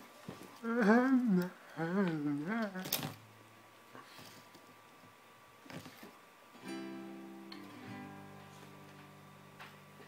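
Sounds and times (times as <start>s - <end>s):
classical guitar chord ringing: 6.6s - 9.1s.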